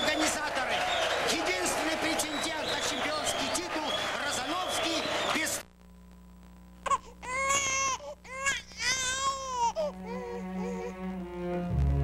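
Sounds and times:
baby crying: 6.8 - 11.2.

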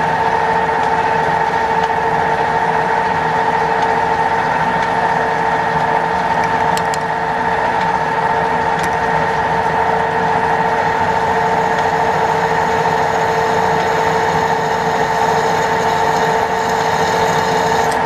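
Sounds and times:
drill press cutting metal: 10.8 - 18.0.

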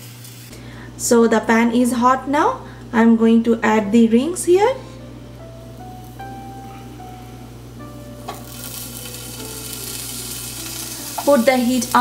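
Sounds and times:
vegetables sizzling in a pan: 0.0 - 0.6, 7.6 - 12.0
soft background music: 1.3 - 12.0.

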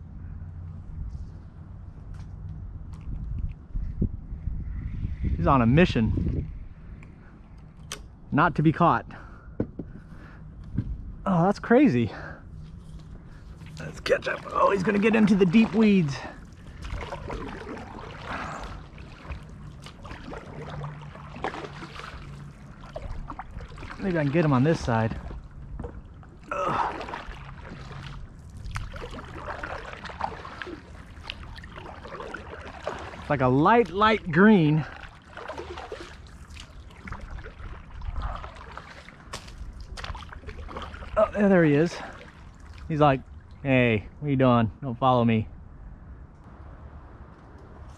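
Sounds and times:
kayak paddle strokes in water: 12.8 - 43.0
water dripping off paddle: 13.6 - 41.2.

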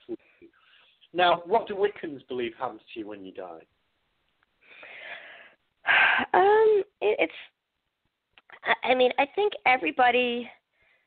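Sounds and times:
person speaking: 0.0 - 3.7
person breathing: 4.6 - 6.3, 10.7 - 11.0.

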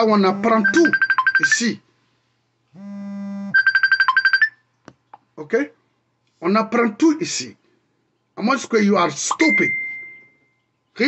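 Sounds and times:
fast high beeps: 0.4 - 1.6, 3.5 - 4.6
low steady tone: 9.3 - 10.9.

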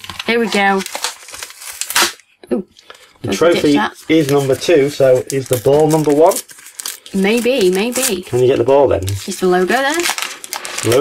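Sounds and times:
plastic wrapper crinkling and tearing: 0.0 - 11.0.

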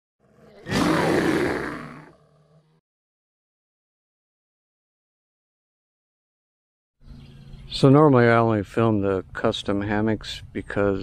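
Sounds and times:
bear roaring: 0.2 - 2.8.

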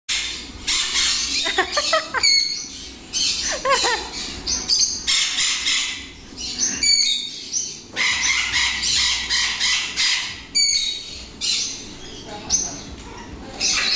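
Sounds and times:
parrots screeching and whistling: 0.1 - 13.9.

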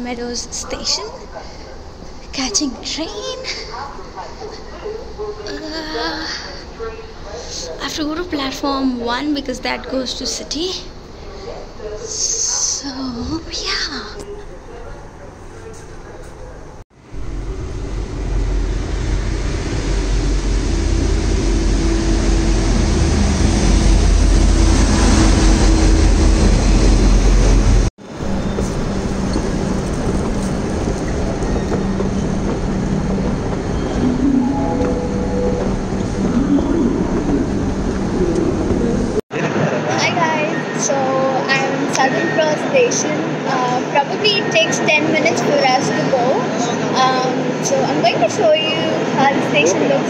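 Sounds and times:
electric train rumble and whine: 0.0 - 50.0
rail station hum: 0.0 - 50.0.

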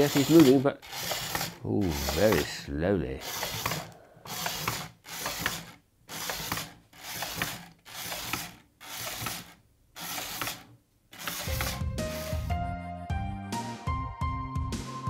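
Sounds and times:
toy motor whirring and clicking: 0.0 - 12.5
music: 11.3 - 15.0.

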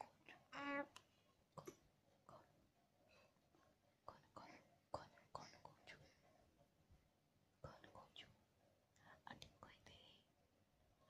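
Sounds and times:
faint whispering: 1.6 - 3.4, 4.0 - 6.4, 7.6 - 10.4.

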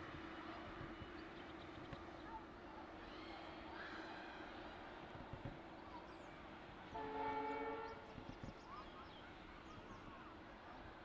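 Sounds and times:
distant locomotive horn blast: 6.9 - 8.1.

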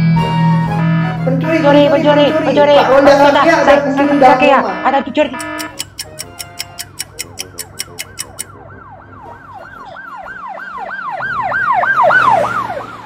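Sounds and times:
police siren wailing: 0.0 - 5.7, 7.7 - 13.0
fast ticking: 5.2 - 8.6.

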